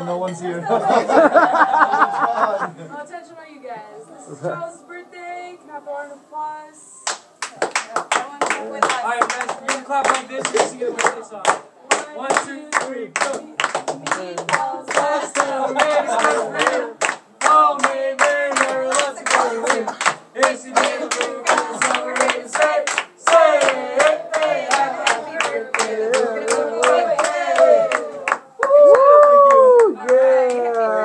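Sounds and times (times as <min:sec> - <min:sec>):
rhythmic hand clapping: 0:07.1 - 0:31.0
group singing: 0:08.5 - 0:28.4.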